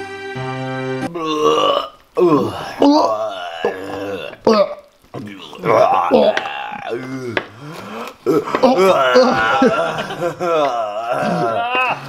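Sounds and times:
music with held chords: 0:00.0 - 0:01.1
guttural burp-like vocal noise: 0:01.1 - 0:12.0.

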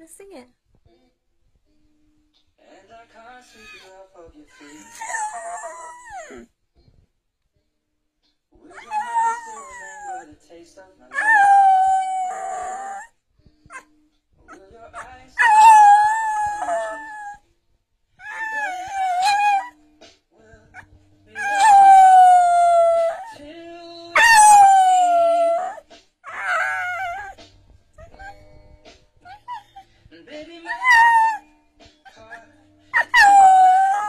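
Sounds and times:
dog howling: 0:04.6 - 0:06.5, 0:08.7 - 0:10.2, 0:11.1 - 0:13.1, 0:15.4 - 0:17.4, 0:18.2 - 0:19.8, 0:21.4 - 0:23.4, 0:24.1 - 0:27.4, 0:30.6 - 0:31.4, 0:33.0 - 0:34.0.

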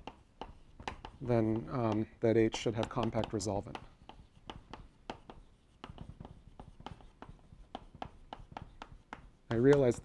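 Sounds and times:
chalk tapping and scraping on blackboard: 0:00.0 - 0:10.0.

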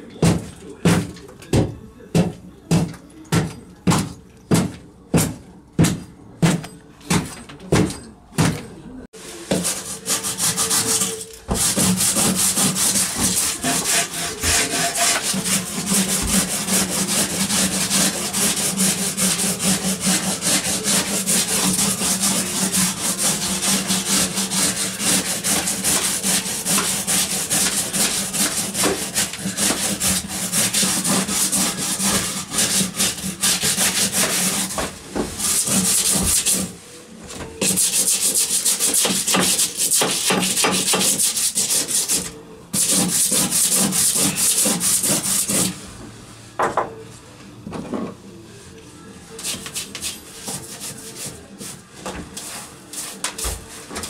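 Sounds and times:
hand tool scraping wooden beam: 0:09.5 - 0:36.7, 0:37.6 - 0:45.8, 0:52.4 - 0:53.7.

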